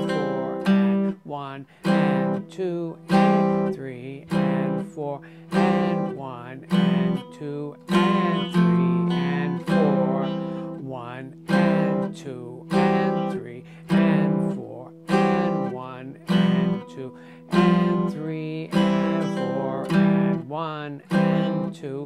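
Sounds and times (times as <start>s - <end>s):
archtop guitar chords strummed with pick: 0.0s - 22.0s.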